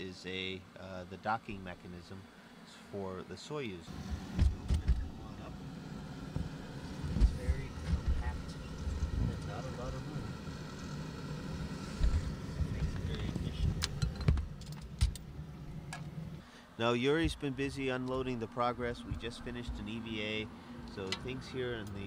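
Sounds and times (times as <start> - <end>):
steady hum: 0.0 - 22.0
microphone bumping and rubbing: 4.0 - 5.1, 6.4 - 9.4.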